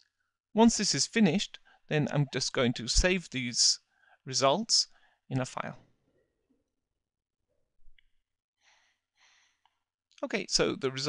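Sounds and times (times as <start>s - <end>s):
soft breath: 3.9s - 4.3s, 4.9s - 5.2s, 8.6s - 9.8s.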